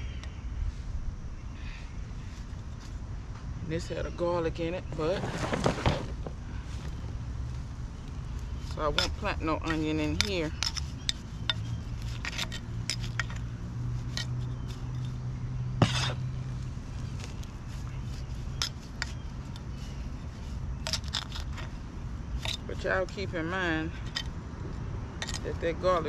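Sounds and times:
low steady hum: 0:00.0 - 0:26.0
trowel scraping concrete: 0:08.7 - 0:13.4, 0:15.8 - 0:16.3.

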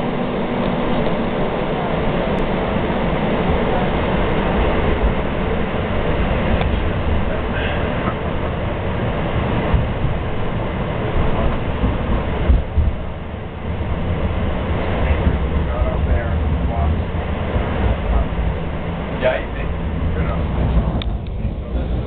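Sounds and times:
train wheels rumbling on rails: 0:00.0 - 0:22.0.

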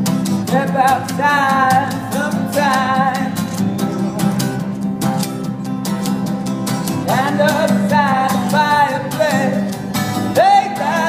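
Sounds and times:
acoustic guitar strumming: 0:00.0 - 0:11.0
man singing: 0:00.5 - 0:04.8, 0:07.0 - 0:11.0.

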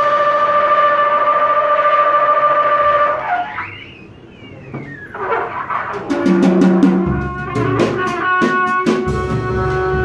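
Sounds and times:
wind instrument long high note: 0:00.0 - 0:03.9, 0:06.5 - 0:10.0
sliding pitch swooping: 0:03.0 - 0:06.6.

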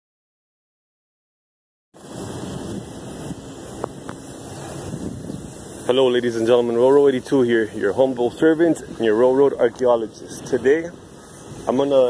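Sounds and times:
wind rumbling on microphone: 0:02.0 - 0:12.0.

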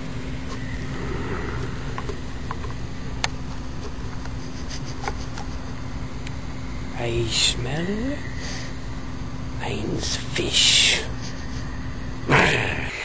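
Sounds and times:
faint hum: 0:00.0 - 0:13.0
low rumble and hiss: 0:00.0 - 0:13.0.

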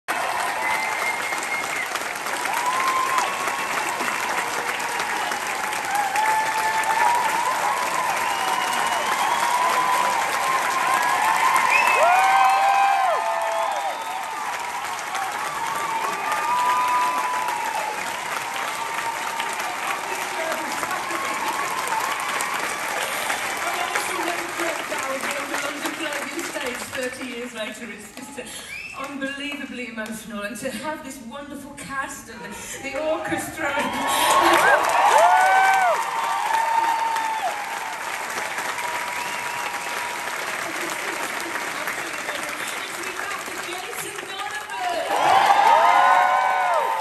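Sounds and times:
audience applauding: 0:00.0 - 0:29.6, 0:32.9 - 0:47.0
people whooping and cheering: 0:00.1 - 0:25.2, 0:33.5 - 0:47.0.

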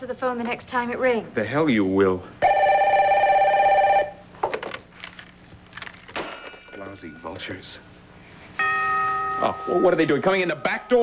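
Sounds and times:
telephone ringing: 0:02.4 - 0:04.2.

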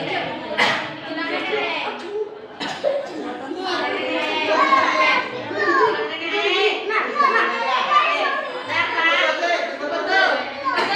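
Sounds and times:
children talking and calling out: 0:00.0 - 0:10.9.

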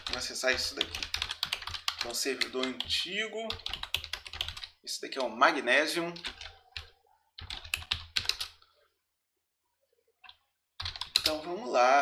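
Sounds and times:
computer keyboard typing: 0:00.0 - 0:05.3, 0:06.2 - 0:08.6, 0:10.2 - 0:11.4.

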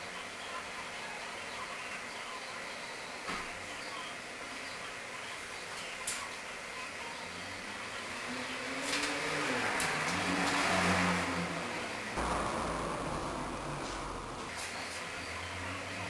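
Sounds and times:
vehicle engine passing by: 0:08.2 - 0:16.0.

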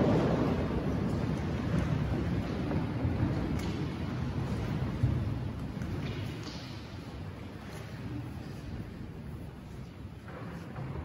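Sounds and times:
low rumbling room noise: 0:00.0 - 0:11.0
people shuffling: 0:00.0 - 0:11.0.

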